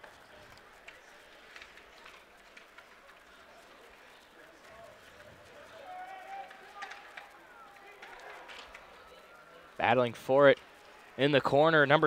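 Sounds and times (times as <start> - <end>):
low murmur of voices: 0.0 - 12.0.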